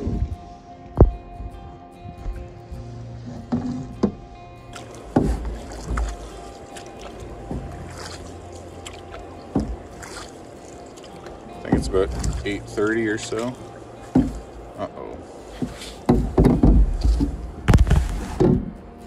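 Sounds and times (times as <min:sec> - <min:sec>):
background music: 0:00.0 - 0:19.0
paddle strokes in water: 0:02.1 - 0:19.0
paddle knock or splash: 0:03.2 - 0:18.8.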